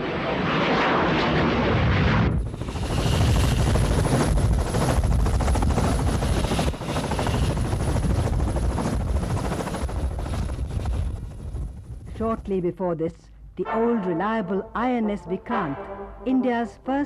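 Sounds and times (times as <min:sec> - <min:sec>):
jet roar: 0:00.0 - 0:04.0
helicopter turbine engines whining: 0:00.0 - 0:12.5.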